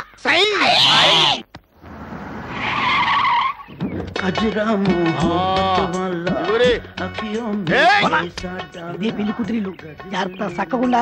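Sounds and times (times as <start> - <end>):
tyres skidding: 1.8 - 4.3
man's loud voice: 7.6 - 11.0.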